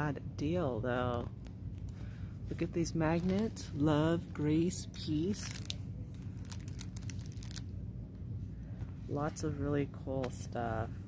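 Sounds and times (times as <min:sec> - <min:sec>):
steady low hum: 0:00.0 - 0:11.0
cellophane crinkling: 0:02.6 - 0:07.7.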